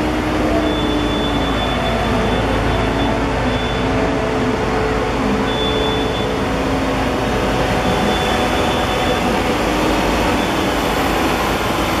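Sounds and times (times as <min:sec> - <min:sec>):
diesel engine running: 0:00.0 - 0:12.0.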